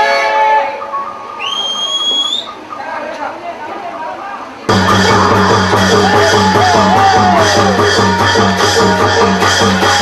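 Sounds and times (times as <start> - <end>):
shrill whistle-like note: 1.4 - 2.6.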